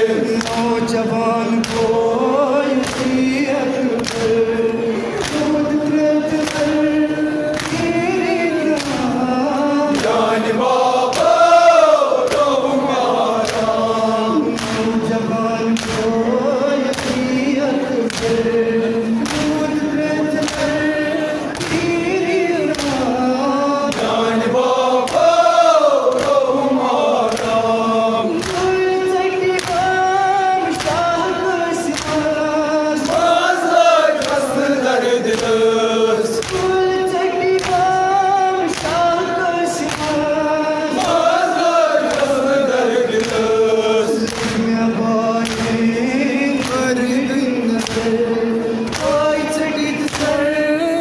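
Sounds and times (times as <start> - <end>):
men singing a lament in unison: 0.0 - 51.0
hand slaps on chests: 0.2 - 0.8, 1.6 - 6.9, 7.5 - 9.2, 9.9 - 15.1, 15.7 - 16.2, 16.8 - 23.1, 23.9 - 24.4, 25.0 - 30.0, 30.6 - 32.4, 33.0 - 40.3, 40.9 - 44.7, 45.4 - 45.9, 46.5 - 47.0, 47.8 - 50.4.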